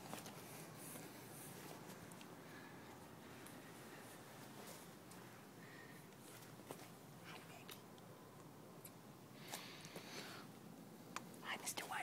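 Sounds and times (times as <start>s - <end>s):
person whispering softly: 7.2s - 7.9s, 11.4s - 12.0s.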